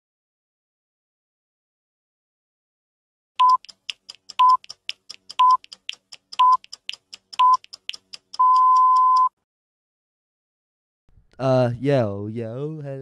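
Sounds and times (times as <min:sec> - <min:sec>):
short high beeps: 0:03.4 - 0:03.7, 0:04.4 - 0:04.7, 0:05.4 - 0:05.7, 0:06.4 - 0:06.8, 0:07.4 - 0:07.7, 0:08.4 - 0:09.4.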